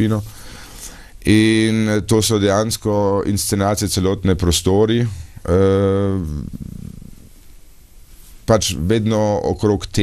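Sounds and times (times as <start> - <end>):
man's drawn-out hesitation sound: 1.2 - 7.2
man's low creaky murmur: 5.5 - 7.3.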